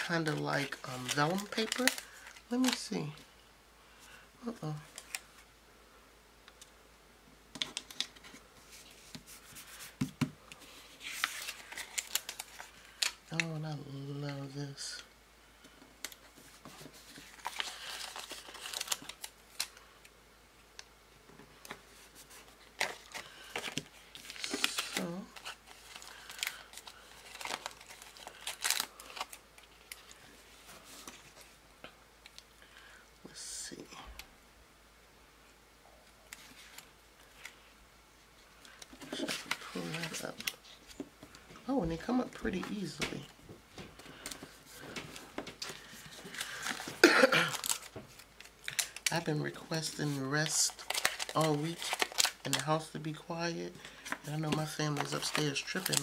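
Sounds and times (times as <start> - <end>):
paper rustling and crinkling: 0.0 - 3.2, 7.6 - 13.5, 16.0 - 19.9, 21.6 - 31.6, 36.3 - 37.6, 38.6 - 53.1, 53.7 - 56.0.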